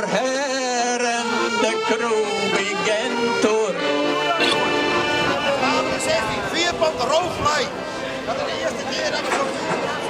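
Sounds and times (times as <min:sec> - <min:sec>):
accordions: 0:00.0 - 0:10.0
men's choir singing: 0:00.0 - 0:10.0
outdoor crowd: 0:00.0 - 0:10.0
man's loud voice: 0:05.4 - 0:09.4.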